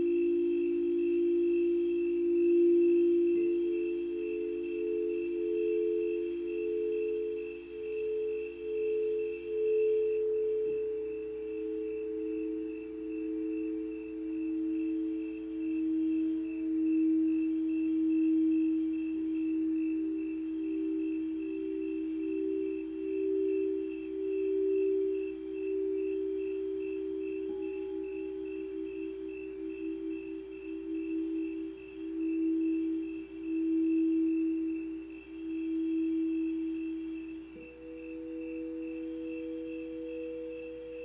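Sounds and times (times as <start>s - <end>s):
singing bowls ringing: 0.0s - 41.0s.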